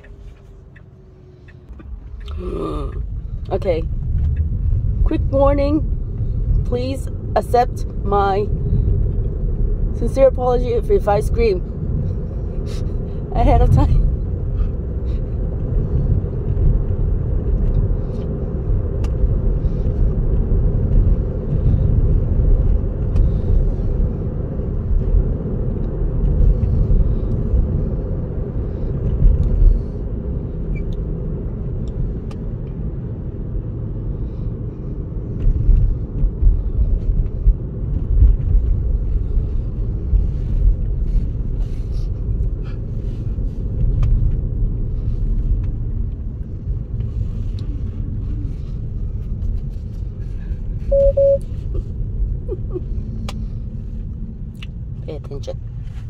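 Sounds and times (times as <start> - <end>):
tyre and road rumble in car: 0.0 - 56.0.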